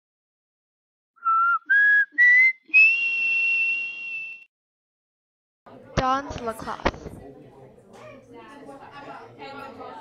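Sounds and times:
person whistling rising notes: 0:01.2 - 0:04.5.

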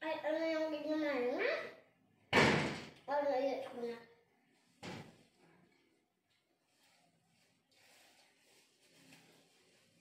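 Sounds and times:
loud bang: 0:02.3 - 0:02.9.

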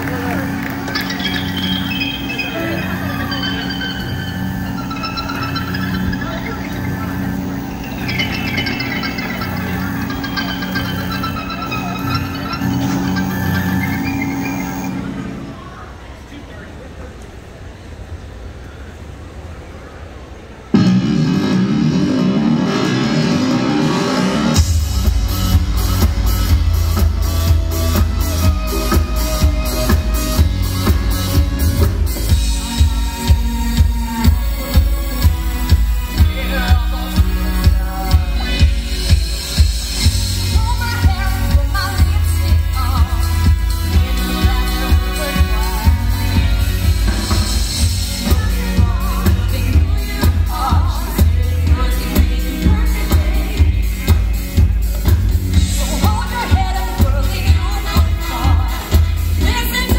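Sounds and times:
live band music through pa: 0:00.0 - 0:15.6, 0:20.7 - 0:59.9.

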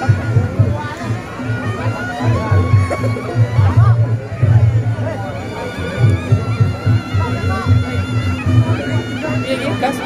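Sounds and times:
crowd voices: 0:00.0 - 0:10.0
low drum and gong beat: 0:00.0 - 0:10.0.

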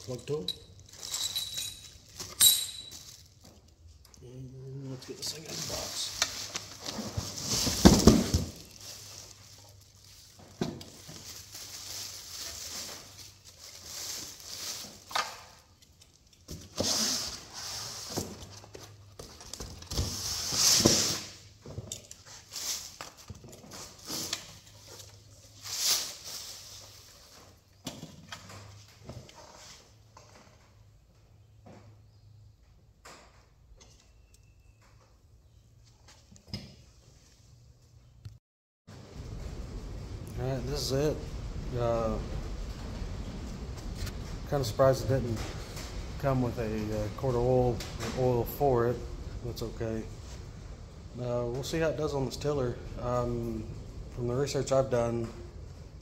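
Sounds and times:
plastic wrapping crinkling: 0:00.0 - 0:16.5.

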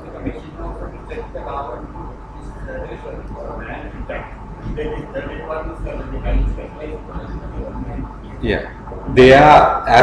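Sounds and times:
indistinct speech: 0:00.0 - 0:10.0
steady low hum: 0:00.0 - 0:10.0.

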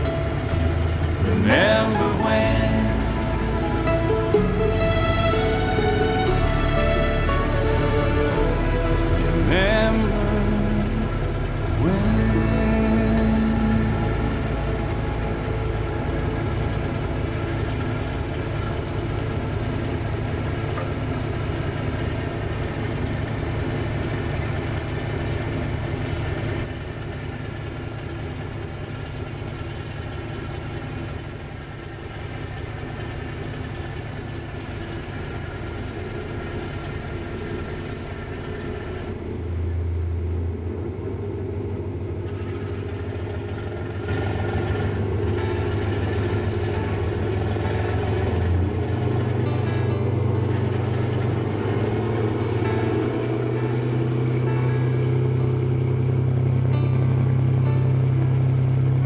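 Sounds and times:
ship diesel engine running: 0:00.0 - 0:59.0.

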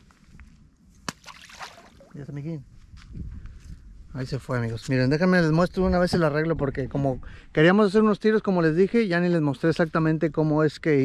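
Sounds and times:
sharp slap on water: 0:01.0 - 0:01.9
water splash: 0:01.1 - 0:02.2.

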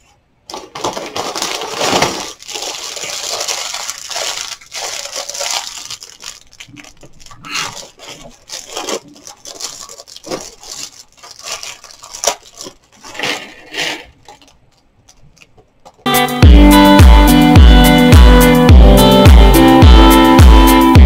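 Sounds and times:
plastic bag crinkling: 0:00.5 - 0:16.1.

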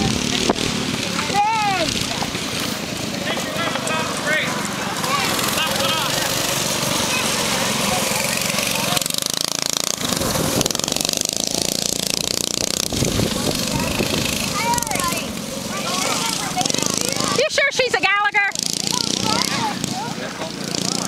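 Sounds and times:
go-kart engines racing: 0:00.0 - 0:21.0.

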